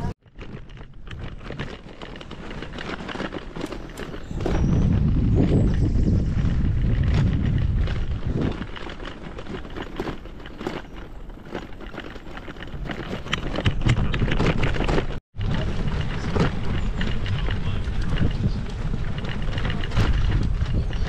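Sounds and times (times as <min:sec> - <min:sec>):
bicycle tyres drumming on cobblestones: 0:00.0 - 0:21.0
bike and bags rattling: 0:00.0 - 0:21.0
wind rumble on microphone: 0:00.0 - 0:21.0.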